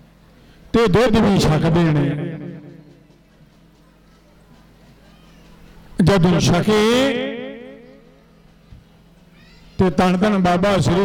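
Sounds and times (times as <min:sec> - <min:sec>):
man preaching over loudspeaker: 0:00.7 - 0:02.9, 0:06.0 - 0:08.0, 0:09.8 - 0:11.0.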